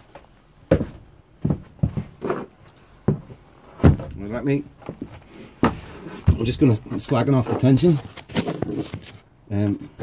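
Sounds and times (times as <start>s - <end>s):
objects knocking and clunking: 1.5s - 9.2s.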